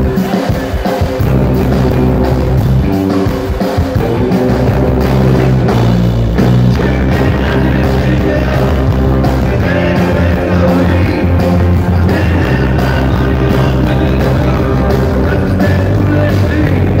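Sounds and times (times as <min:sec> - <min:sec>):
bass guitar: 0:00.0 - 0:17.0
electric guitar: 0:00.0 - 0:17.0
steady drum beat: 0:00.0 - 0:17.0
person singing: 0:06.7 - 0:17.0.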